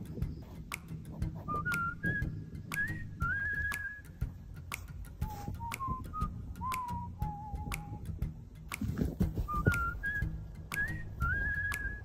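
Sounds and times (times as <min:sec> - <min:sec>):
whistled melody music: 0:00.0 - 0:12.0.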